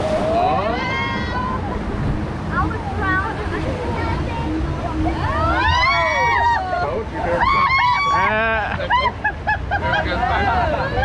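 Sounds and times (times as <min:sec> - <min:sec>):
people shouting over water: 0:00.3 - 0:01.8, 0:05.0 - 0:09.2.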